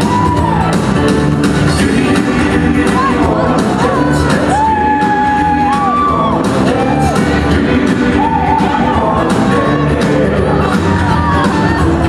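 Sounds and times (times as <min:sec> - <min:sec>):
up-tempo jive music: 0:00.0 - 0:12.0.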